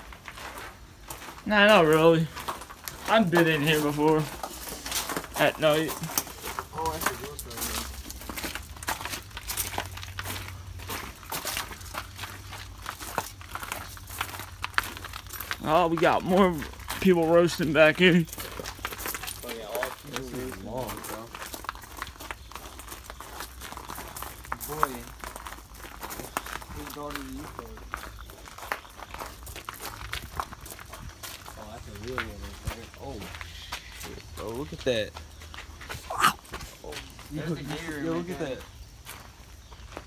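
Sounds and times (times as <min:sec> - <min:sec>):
footsteps: 0:00.0 - 0:40.0.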